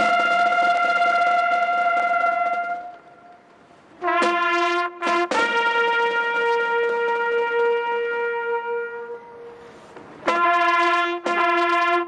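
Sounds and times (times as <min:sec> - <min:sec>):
slow solo brass music: 0:00.0 - 0:03.4, 0:04.0 - 0:12.0.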